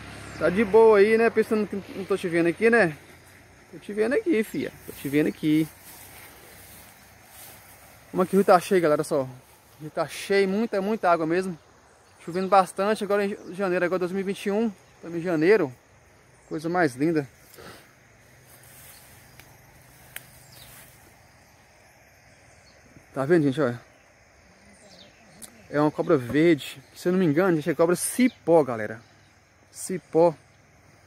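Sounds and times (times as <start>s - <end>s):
faint outdoor hiss: 0.0s - 31.0s.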